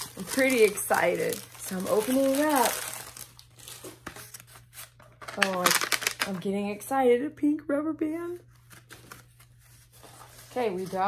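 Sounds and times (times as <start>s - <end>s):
tissue paper rustling and crinkling: 0.0s - 6.3s, 8.7s - 11.0s.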